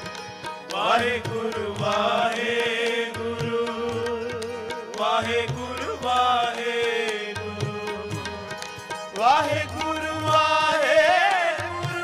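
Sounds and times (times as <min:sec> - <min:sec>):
harmonium: 0:00.0 - 0:12.0
man singing: 0:00.7 - 0:12.0.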